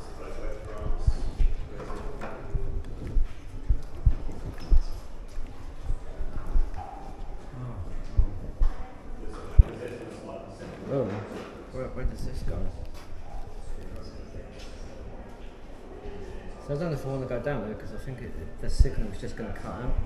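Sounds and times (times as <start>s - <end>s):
faint voices: 0.0s - 20.0s.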